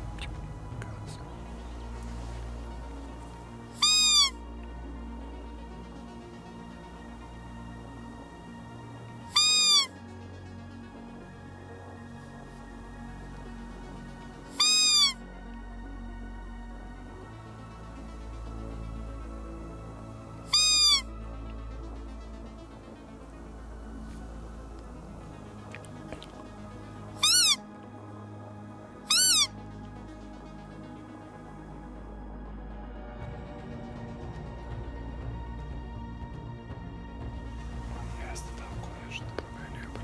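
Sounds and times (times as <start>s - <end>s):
quiet background music: 0.0s - 40.0s
high-pitched game call squeal: 3.8s - 4.4s, 9.3s - 9.9s, 14.5s - 15.2s, 20.5s - 21.1s, 27.2s - 27.6s, 29.1s - 29.5s.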